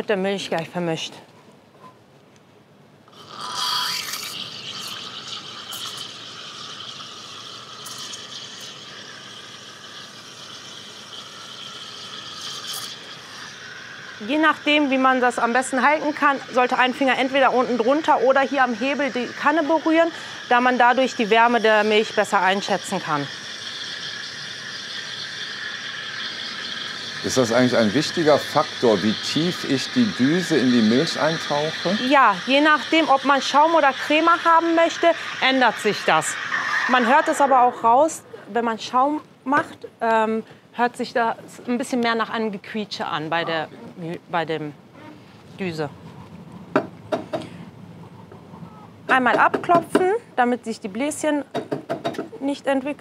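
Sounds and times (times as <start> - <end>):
steam wand hissing and squealing: 3.2 - 38.2.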